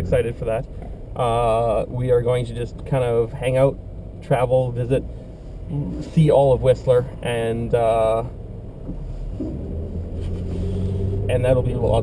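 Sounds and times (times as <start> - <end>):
car engine hum: 0.0 - 12.0
road rumble: 0.0 - 12.0.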